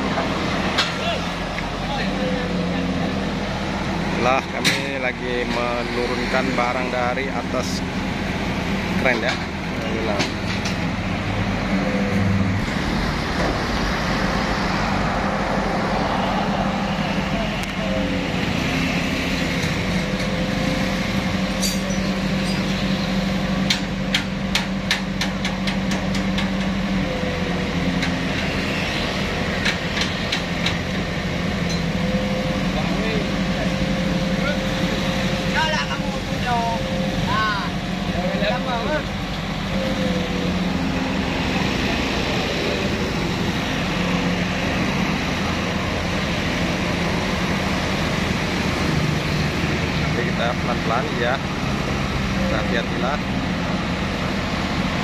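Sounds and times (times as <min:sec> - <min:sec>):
truck engine running steadily: 0:00.0 - 0:55.0.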